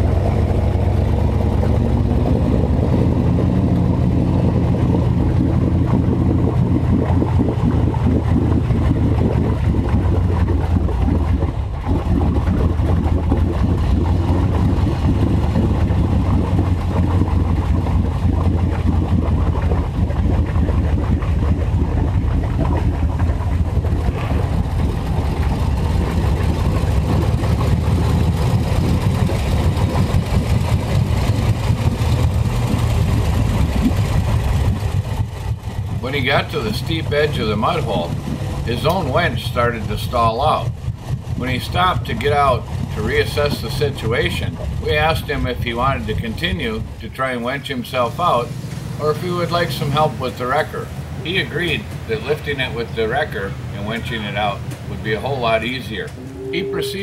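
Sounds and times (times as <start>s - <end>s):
vehicle engine running: 0.0s - 57.0s.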